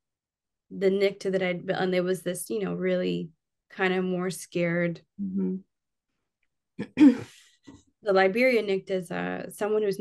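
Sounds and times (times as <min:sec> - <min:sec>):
woman clearing her throat: 0:06.8 - 0:07.3.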